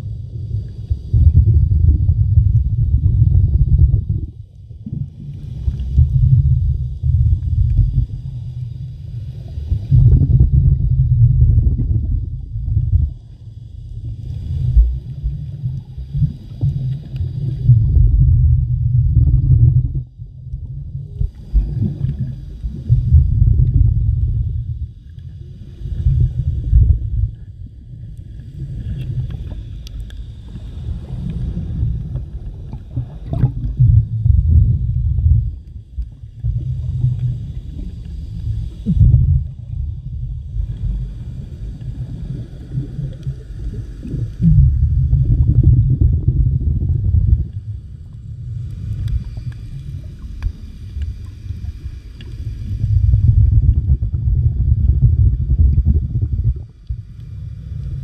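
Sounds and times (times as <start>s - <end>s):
underwater rumble of moving water: 0.0s - 58.0s.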